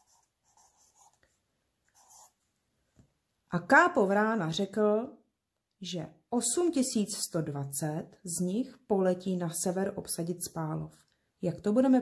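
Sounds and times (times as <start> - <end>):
marker scratching on paper: 0.0 - 2.4.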